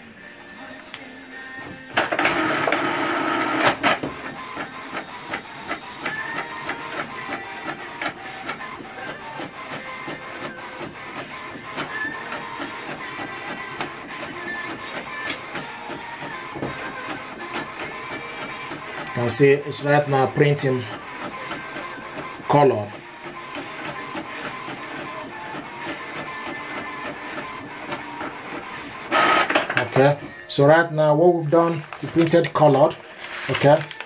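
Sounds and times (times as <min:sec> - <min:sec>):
inkjet printer printing: 0:01.4 - 0:30.4, 0:31.3 - 0:34.0.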